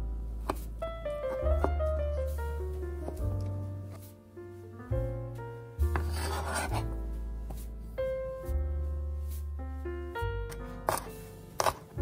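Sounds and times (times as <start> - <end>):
background music: 0.0 - 12.0
knife scraping sausage on cutting board: 6.0 - 6.9.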